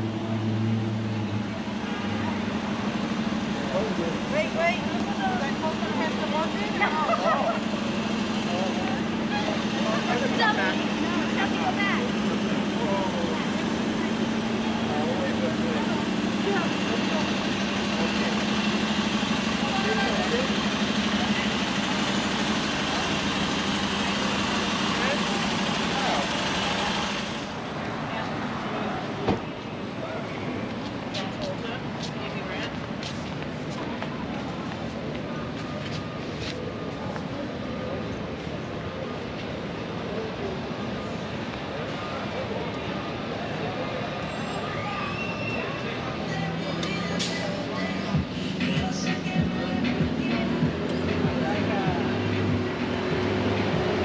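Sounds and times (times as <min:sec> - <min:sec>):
bus engine idling: 0:00.0 - 0:54.0
passers-by talking: 0:00.0 - 0:54.0
footsteps: 0:30.7 - 0:37.3.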